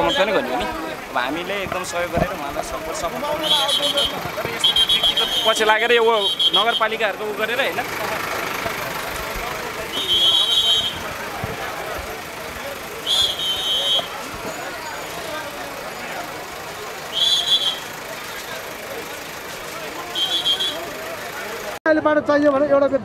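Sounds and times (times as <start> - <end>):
shrill whistle blasts: 0.0 - 0.4, 3.3 - 7.0, 9.9 - 11.1, 13.0 - 14.6, 17.1 - 18.0, 20.0 - 20.9
diesel engine running: 0.0 - 21.8
crowd chatter: 0.0 - 23.0.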